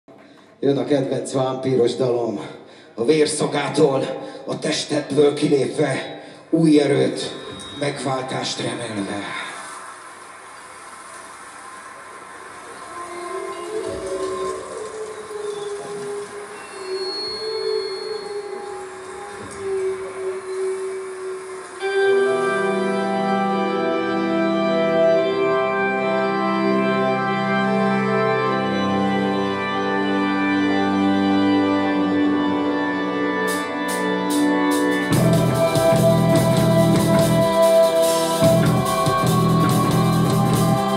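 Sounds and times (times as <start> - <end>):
wavering held notes: 12.7 - 40.9
loud sustained guitar chords: 20.4 - 40.9.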